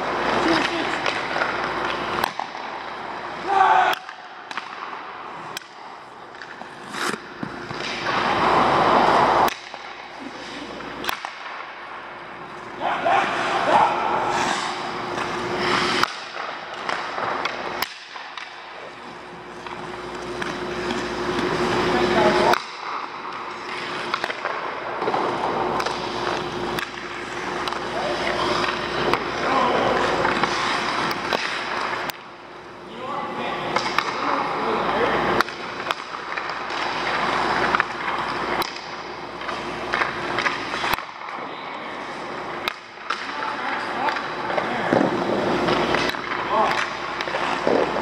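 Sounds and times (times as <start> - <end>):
steady hum: 0.0 - 48.0
skates scraping on ice: 4.6 - 11.6, 13.1 - 32.1, 43.1 - 48.0.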